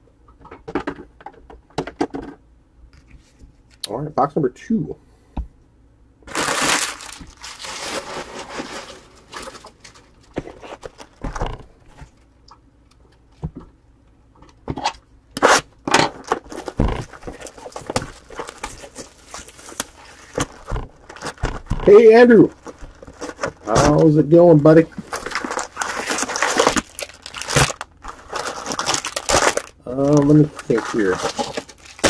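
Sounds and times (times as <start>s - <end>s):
plastic wrap tearing and crinkling: 6.3s - 11.6s, 15.4s - 32.0s.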